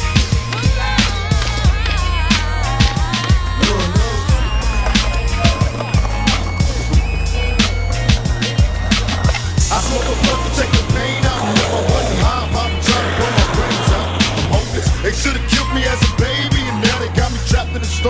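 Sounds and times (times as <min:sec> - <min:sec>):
music with steady beat: 0:00.0 - 0:18.0
skateboard rolling on concrete: 0:00.0 - 0:18.0.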